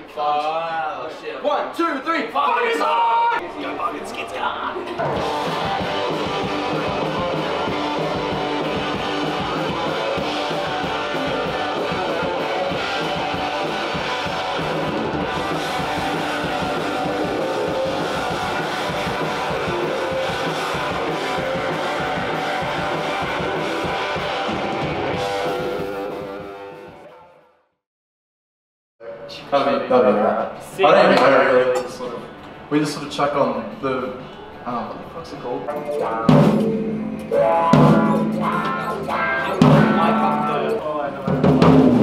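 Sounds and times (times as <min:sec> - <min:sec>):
garage rock band playing: 0:04.2 - 0:27.1, 0:35.6 - 0:42.0.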